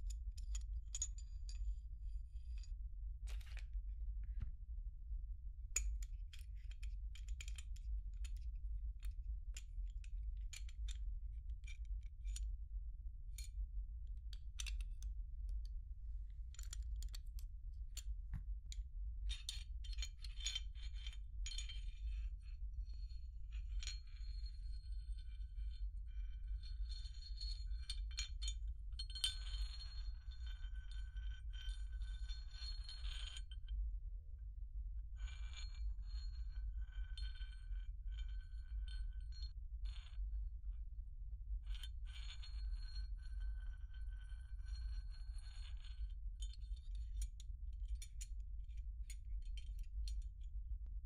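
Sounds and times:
low steady hum: 0.0s - 51.0s.

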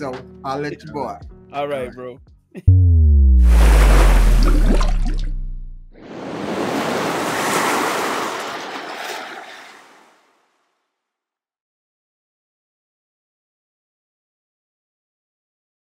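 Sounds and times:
deep boom with falling tone: 2.7s - 6.0s
rushing water splash: 3.4s - 10.3s.

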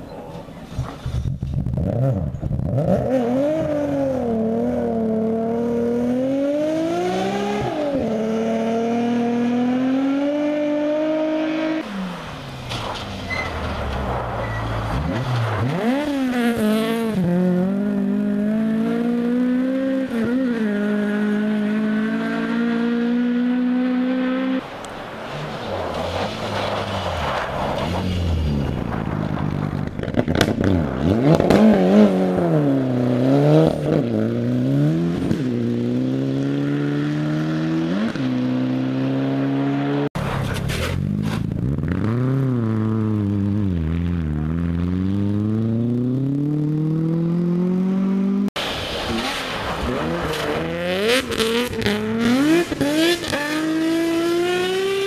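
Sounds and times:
rally car engines revving: 0.0s - 55.0s
sharp cracks and pops: 28.9s - 31.7s.

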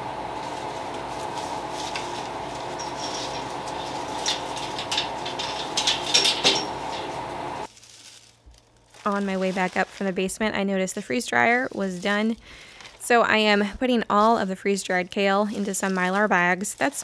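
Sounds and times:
steady machine hum: 0.0s - 7.7s
stalks rustling on wire shelf: 0.1s - 10.4s.

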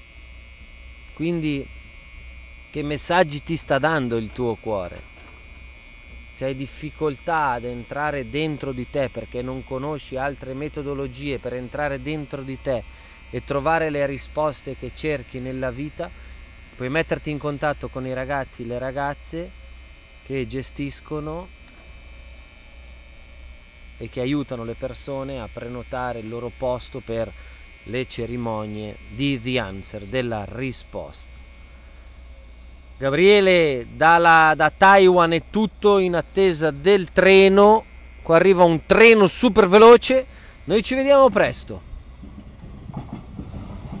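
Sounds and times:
low hum: 0.0s - 44.0s
steady high-pitched whine: 0.0s - 44.0s.

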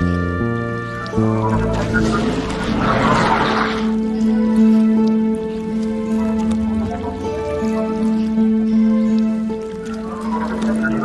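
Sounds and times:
background music held notes: 0.0s - 11.0s.

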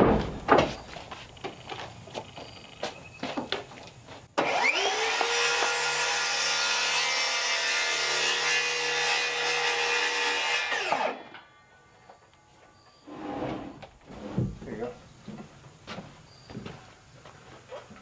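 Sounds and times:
circular saw cutting wood: 4.4s - 11.4s.

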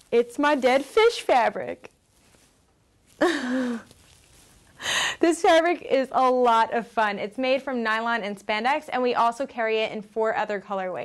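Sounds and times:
woman laughing breathily: 3.2s - 3.9s, 4.8s - 5.2s
sharp breath in: 4.8s - 5.2s.

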